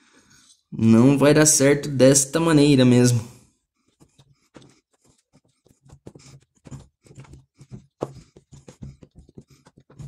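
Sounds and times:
small taps: 0:04.0 - 0:10.0.

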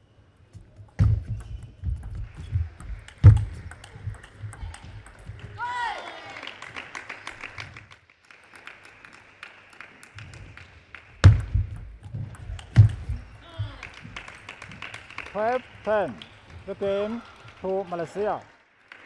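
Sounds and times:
table tennis ball clicking: 0:00.9 - 0:05.6.

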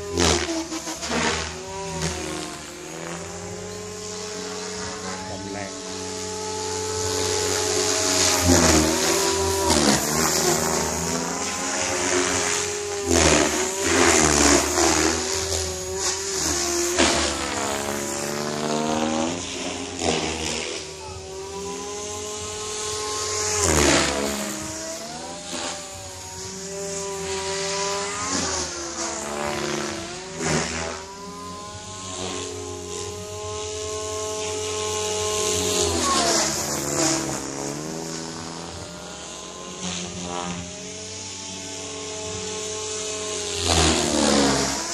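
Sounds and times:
helicopter rotor buzz: 0:00.0 - 0:44.9
rc helicopter motor whine: 0:00.0 - 0:44.9.

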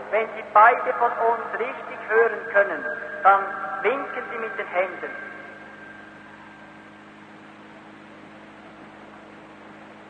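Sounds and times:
recording hiss and low hum: 0:00.0 - 0:10.0.

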